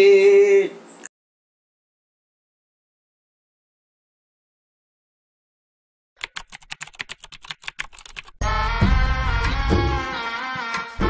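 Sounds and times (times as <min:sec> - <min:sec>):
computer keyboard typing: 0:06.2 - 0:08.4
music: 0:08.4 - 0:11.0.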